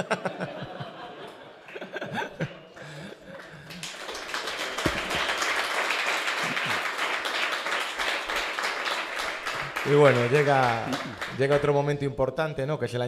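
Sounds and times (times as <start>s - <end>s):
audience applauding: 2.8s - 11.9s.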